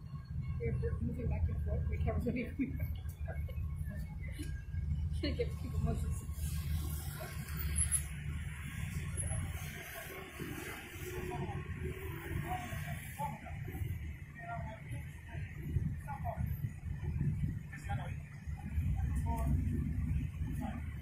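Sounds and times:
low rumble of traffic: 0.0s - 21.0s.

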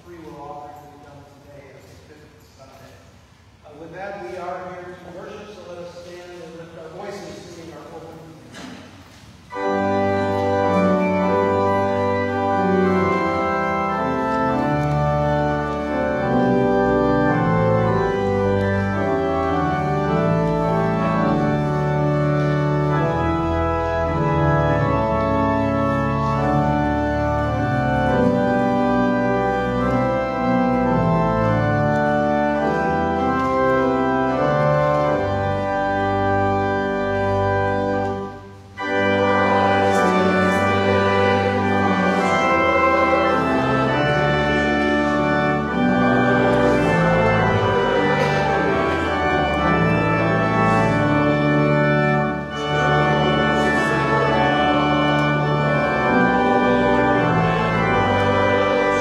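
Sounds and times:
organ chords: 3.2s - 59.0s.

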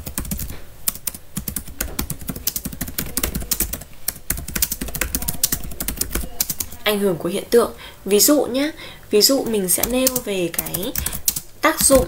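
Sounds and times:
keyboard typing: 0.0s - 6.8s, 9.4s - 12.0s.

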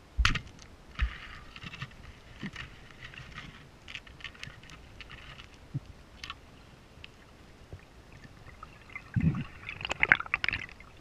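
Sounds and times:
crackling clicks: 0.2s - 6.4s.

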